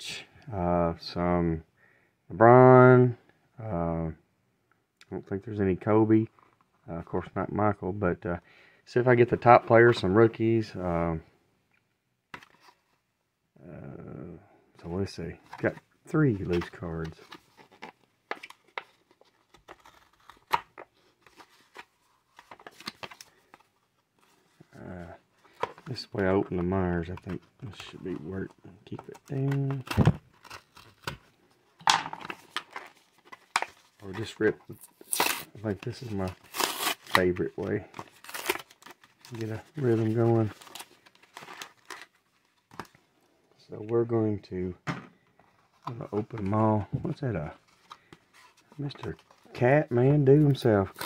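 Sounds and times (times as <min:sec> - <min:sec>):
man speaking: 0:00.0 - 0:01.6, 0:05.1 - 0:06.3, 0:06.9 - 0:11.2, 0:13.6 - 0:17.2, 0:24.7 - 0:25.2, 0:25.8 - 0:29.9, 0:34.0 - 0:34.8, 0:35.4 - 0:36.4, 0:37.1 - 0:38.0, 0:39.3 - 0:40.6, 0:43.6 - 0:44.8, 0:45.9 - 0:47.6, 0:48.7 - 0:51.0
packaging rustle: 0:16.4 - 0:31.6, 0:32.2 - 0:43.1.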